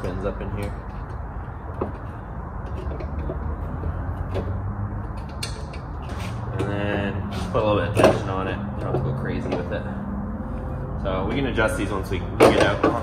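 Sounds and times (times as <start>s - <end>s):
metallic clicks and creaks: 0.0s - 11.8s
steady low hum: 0.0s - 13.0s.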